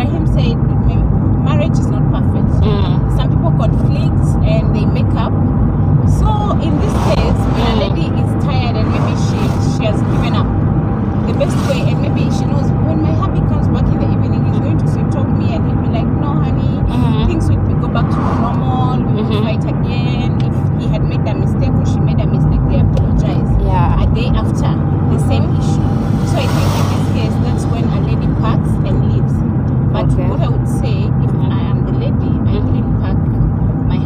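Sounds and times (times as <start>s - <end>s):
car engine and road rumble: 0.0s - 34.0s.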